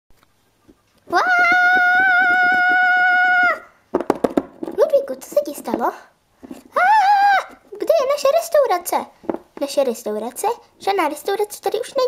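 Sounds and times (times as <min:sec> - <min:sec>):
high-pitched voice long cry: 0:01.1 - 0:03.7, 0:06.7 - 0:07.8.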